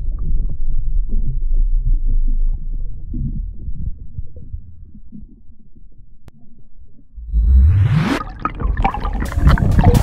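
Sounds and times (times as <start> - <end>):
muffled underwater rumble: 0.0 - 10.0
whoosh rising in pitch: 7.2 - 9.4.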